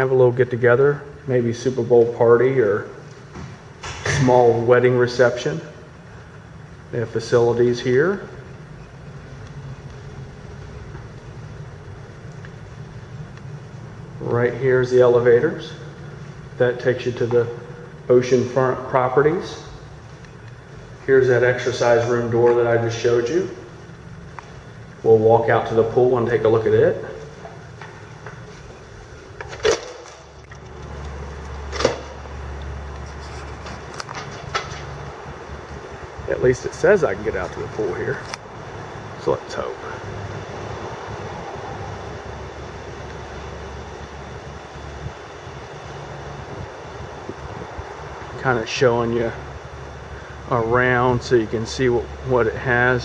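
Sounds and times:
air-conditioning hum: 0.0 - 53.0
steady low rumble: 0.0 - 53.0.

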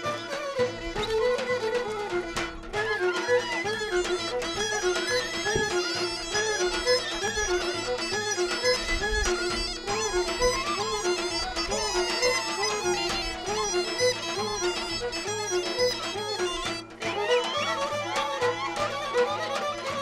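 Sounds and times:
bagpipe folk dance tune: 0.0 - 20.0.

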